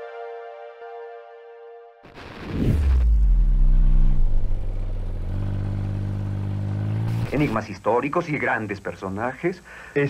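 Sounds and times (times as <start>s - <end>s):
vehicle engine rumbling: 2.9s - 7.7s.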